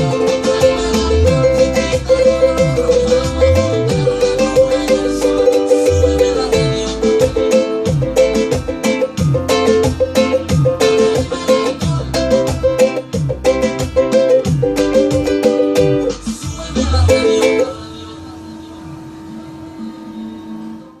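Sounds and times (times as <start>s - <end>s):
low thumping beat: 0.0s - 17.8s
ukulele strumming: 0.0s - 17.9s.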